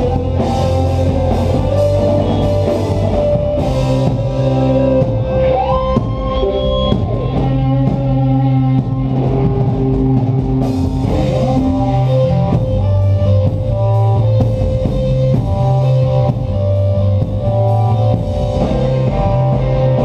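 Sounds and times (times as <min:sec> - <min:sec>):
drum kit: 0:00.0 - 0:20.0
electric bass: 0:00.0 - 0:20.0
electric guitars sustained chords: 0:00.0 - 0:20.0.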